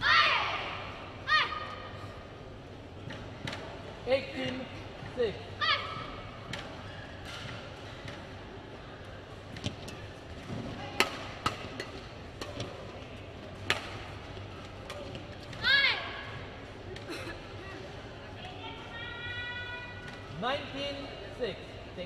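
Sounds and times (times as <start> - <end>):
hall background noise: 0.0 - 22.0
rackets striking shuttlecock: 6.0 - 8.4, 9.5 - 15.6
shoe squeal on floor: 6.8 - 7.2.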